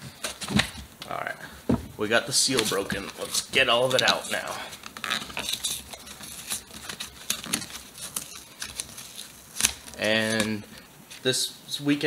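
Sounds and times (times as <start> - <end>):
cardboard box rustling: 2.4 - 10.5.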